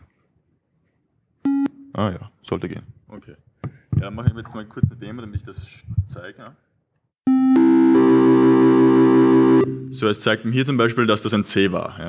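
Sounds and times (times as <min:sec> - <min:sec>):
synthesized keyboard chord: 0:07.3 - 0:10.2.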